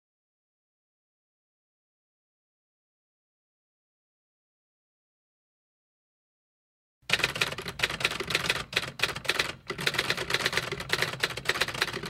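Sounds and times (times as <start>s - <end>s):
typewriter keys clattering: 7.1s - 12.0s.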